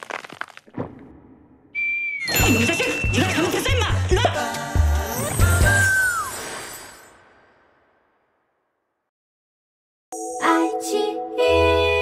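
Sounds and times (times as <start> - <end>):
sharp cracks and knocks: 0.0 - 1.2
high whistle tone sliding down: 1.7 - 2.6, 5.4 - 6.7.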